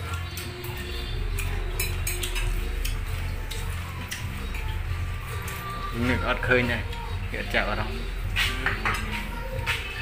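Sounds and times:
background music: 0.0 - 10.0
spoon clicking against plate: 1.4 - 4.3.

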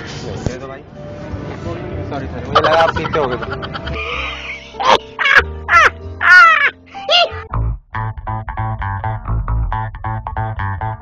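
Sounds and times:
low music bed: 0.1 - 11.0
bass notes: 1.8 - 11.0
crow cawing: 4.9 - 6.8.

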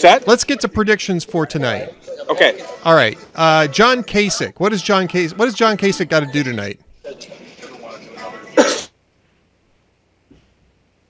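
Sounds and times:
person coughing: 8.6 - 8.9.

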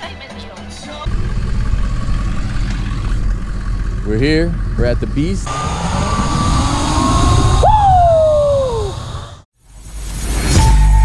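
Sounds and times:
wind rumble: 1.1 - 9.4
zip line trolley whining on cable: 5.5 - 9.3.

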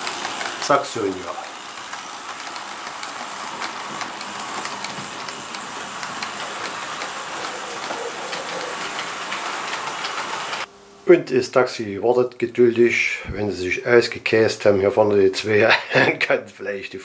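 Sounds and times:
model train wheels rolling on rail: 0.0 - 10.7.

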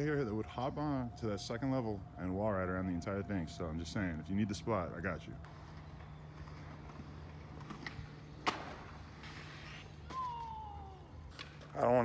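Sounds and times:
low outdoor hum: 0.0 - 12.0
skateboard clack: 5.4 - 11.8.

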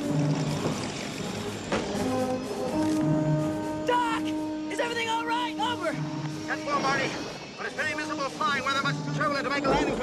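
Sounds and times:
orchestral brass sustained notes: 1.2 - 9.8.

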